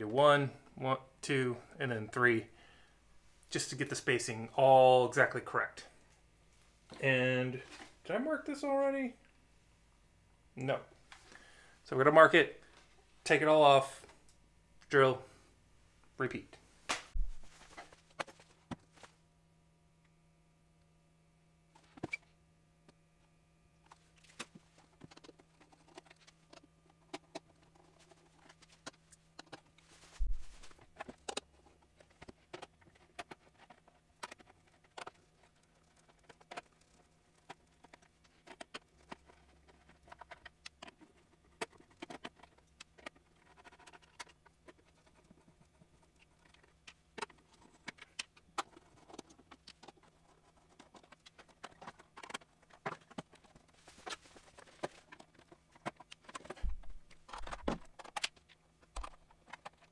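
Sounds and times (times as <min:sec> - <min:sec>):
heavy thump: 0:17.1 - 0:17.5.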